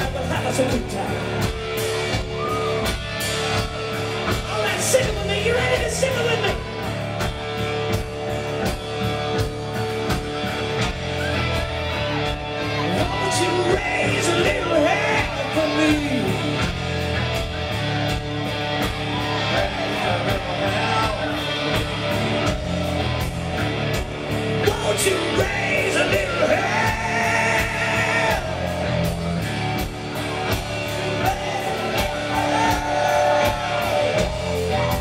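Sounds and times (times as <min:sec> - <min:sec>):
hard rock band playing: 0:00.0 - 0:35.0
person singing and yelling: 0:12.6 - 0:16.7, 0:19.2 - 0:21.7, 0:24.6 - 0:29.2, 0:31.0 - 0:35.0.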